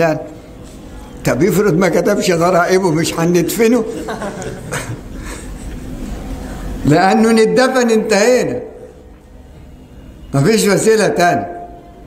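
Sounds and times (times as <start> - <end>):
soft breathy laughter: 4.0 - 5.8.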